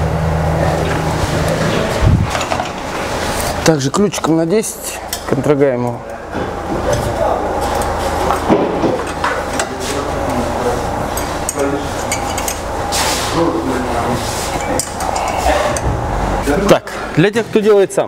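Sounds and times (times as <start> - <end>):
low hum: 0.0 - 17.2
muffled voices: 3.4 - 18.0.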